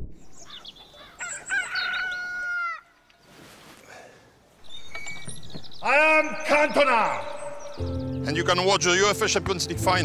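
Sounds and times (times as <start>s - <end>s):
rooster crowing: 1.0s - 3.0s.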